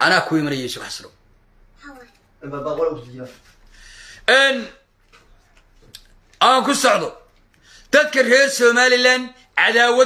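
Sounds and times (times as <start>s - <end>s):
man speaking: 2.4s - 3.6s, 4.2s - 4.9s, 6.4s - 7.3s, 7.9s - 10.0s.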